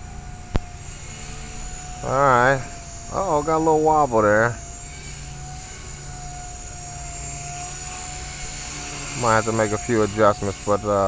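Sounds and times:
rc helicopter motor whine: 0:00.0 - 0:11.0.

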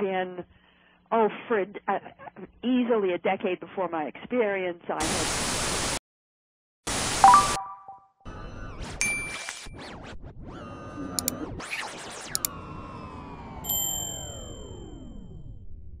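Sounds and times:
notification ding: 0:07.2 - 0:08.0
sharp clicks: 0:11.2 - 0:11.4, 0:12.3 - 0:12.5.

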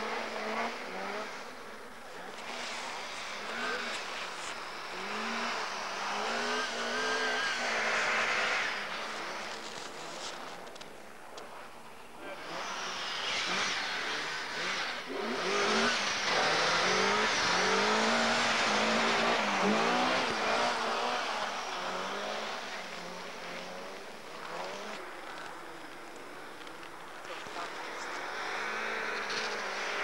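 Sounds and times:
rally car engine revving: 0:00.0 - 0:30.0.

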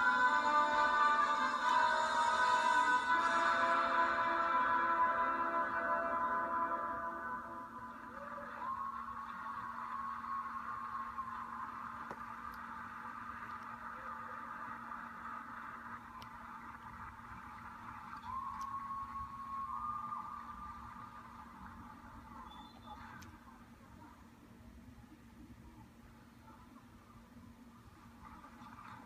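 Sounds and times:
audience applauding: 0:07.9 - 0:23.2
whistle-like notes: 0:18.2 - 0:20.8.

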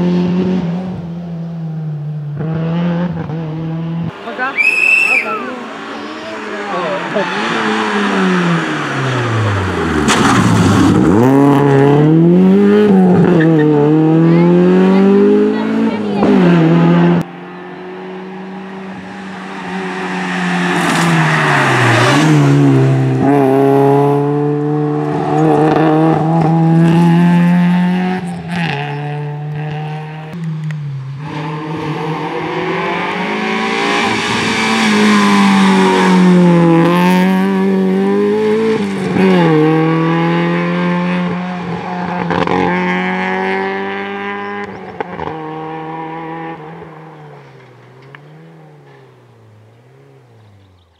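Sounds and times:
rally car engine revving: 0:00.0 - 0:04.5, 0:05.3 - 0:50.9.

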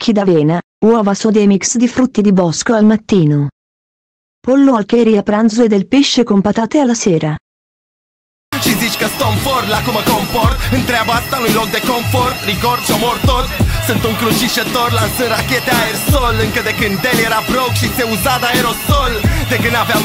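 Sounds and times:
rapping over a beat: 0:08.6 - 0:20.0.

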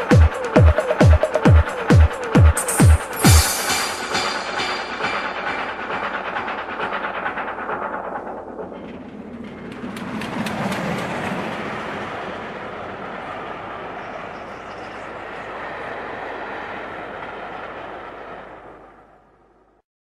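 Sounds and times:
train wheels clickety-clack: 0:00.0 - 0:19.5
rushing noise of moving train: 0:00.0 - 0:19.8.

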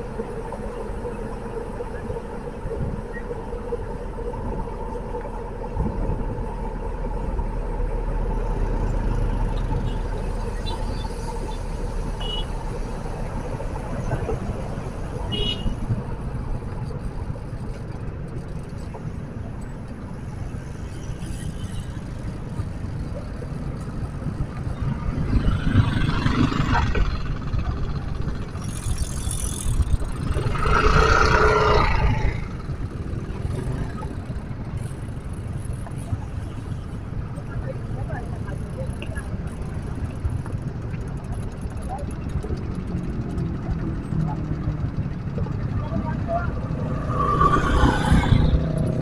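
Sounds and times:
traffic rumble: 0:00.0 - 0:49.0
vehicles passing: 0:00.0 - 0:49.0.

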